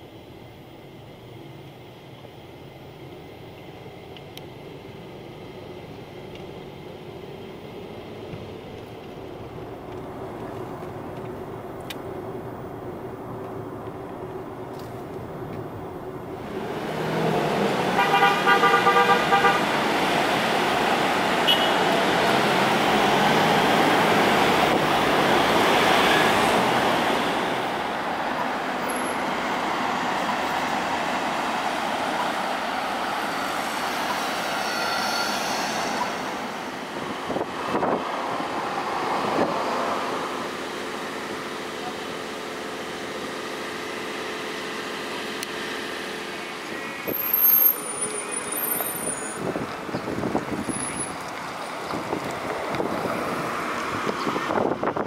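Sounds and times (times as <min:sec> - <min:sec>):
steady engine hum: 0:00.0 - 0:34.5, 0:35.8 - 0:55.0
cars driving past: 0:09.3 - 0:55.0.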